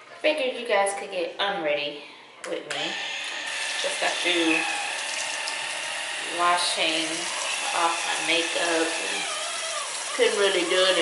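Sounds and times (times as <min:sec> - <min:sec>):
water running into basin: 0:03.5 - 0:11.0.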